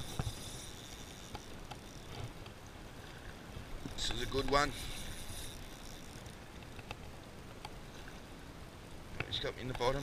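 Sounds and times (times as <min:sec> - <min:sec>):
faint clicks: 0:00.0 - 0:08.2.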